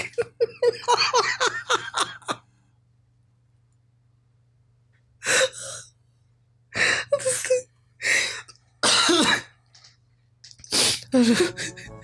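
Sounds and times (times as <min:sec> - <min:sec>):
man laughing and coughing: 0:11.2 - 0:12.0.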